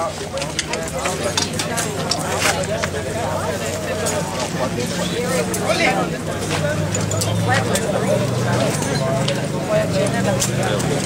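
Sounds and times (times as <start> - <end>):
motorcycle engines idling: 0.0 - 11.0
people talking: 0.0 - 11.0.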